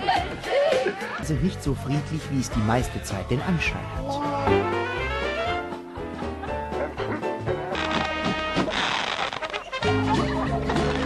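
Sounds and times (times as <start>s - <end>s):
instrumental background music: 0.0s - 11.0s.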